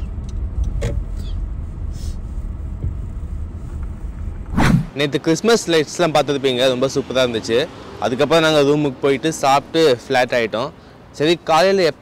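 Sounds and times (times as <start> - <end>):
car driving slowly: 0.0 - 4.5
loud rush of noise: 3.8 - 5.2.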